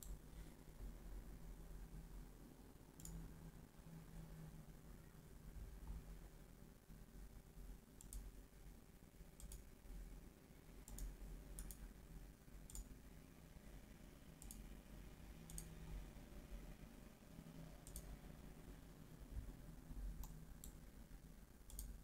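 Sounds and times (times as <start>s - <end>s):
faint computer mouse clicks: 3.0s - 3.2s, 8.0s - 8.3s, 9.4s - 9.7s, 10.9s - 11.9s, 12.7s - 12.9s, 14.4s - 14.7s, 15.5s - 15.7s, 17.8s - 18.1s, 20.2s - 20.8s, 21.7s - 22.0s.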